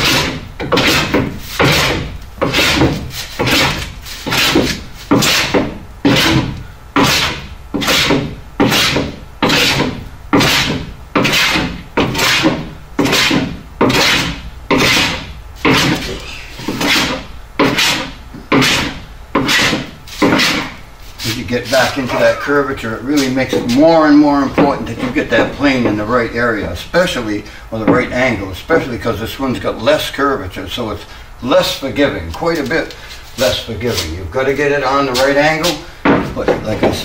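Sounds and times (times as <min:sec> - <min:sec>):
hand plane shaving wood: 0:00.0 - 0:22.3.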